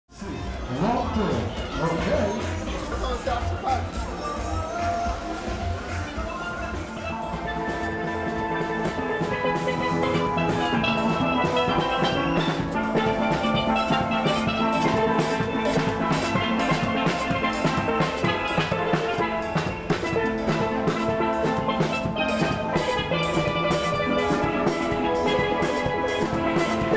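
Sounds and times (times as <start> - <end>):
drums and percussion beat: 0.1 - 26.9
steelpans playing melody: 5.2 - 26.9.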